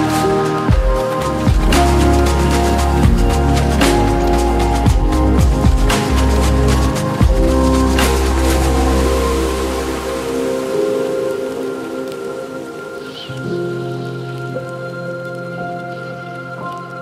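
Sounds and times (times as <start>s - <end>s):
deep bass: 0.0s - 10.6s
soft rain-like hiss: 0.0s - 17.0s
synth pad chords: 0.0s - 17.0s.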